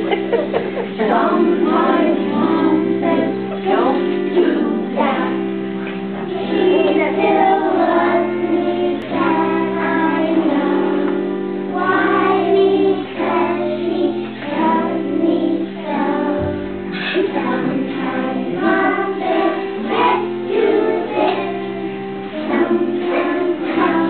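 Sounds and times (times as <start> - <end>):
children singing together: 0.0 - 24.0
instrumental accompaniment: 0.0 - 24.0.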